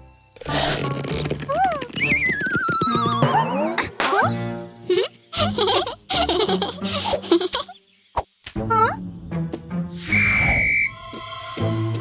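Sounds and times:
light background music: 0.0s - 12.0s
shrill whistle with hiss: 10.0s - 11.2s.

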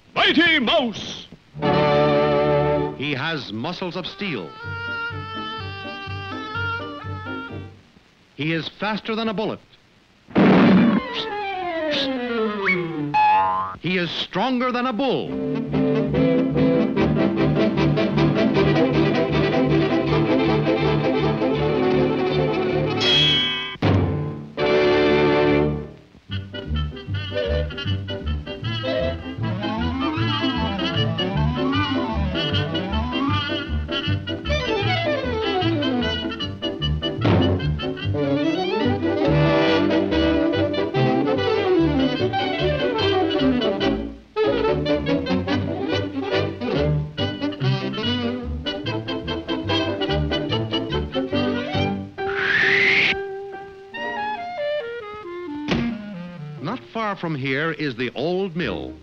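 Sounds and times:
orchestral cartoon music: 1.6s - 3.1s, 4.2s - 7.7s, 15.3s - 52.5s, 53.2s - 57.2s.

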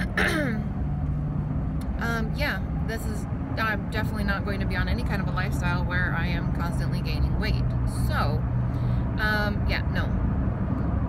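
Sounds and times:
woman clearing her throat: 0.0s - 0.7s
car engine idling: 0.0s - 11.0s.

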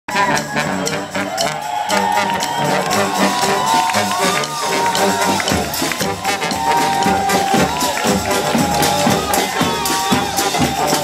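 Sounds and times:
marching brass band playing: 0.1s - 11.0s
snare drum beat: 1.8s - 11.0s.

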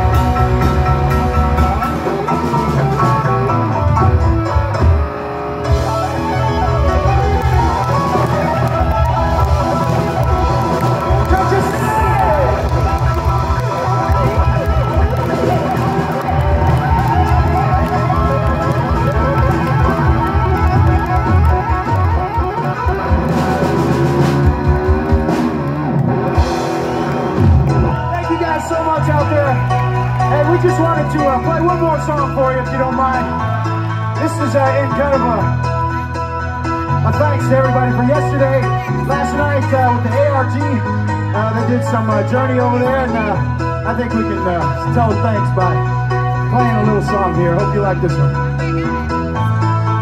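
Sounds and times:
live rock band playing: 0.0s - 50.0s
pulsing bass line: 0.0s - 50.0s.

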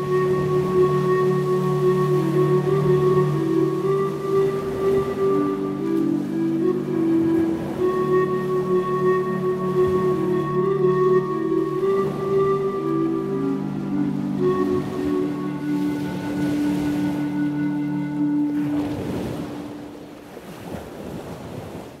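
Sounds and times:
ambient music of held tones: 0.0s - 20.3s.

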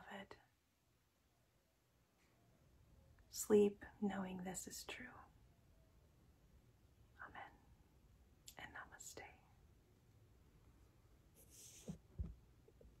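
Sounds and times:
faint whisper-like sounds: 0.0s - 0.7s, 2.1s - 5.9s, 7.0s - 9.9s.

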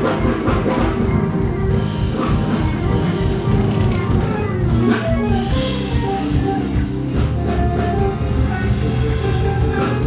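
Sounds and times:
drum kit: 0.0s - 10.0s
electric bass: 0.0s - 10.0s
electric guitar: 0.0s - 10.0s.

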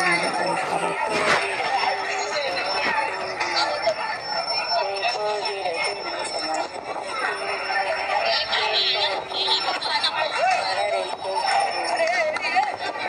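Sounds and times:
people talking and chanting: 0.0s - 13.0s.

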